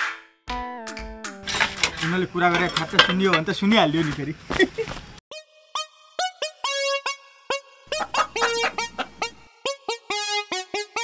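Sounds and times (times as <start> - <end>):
metallic clinks and clanks: 1.4 - 3.6.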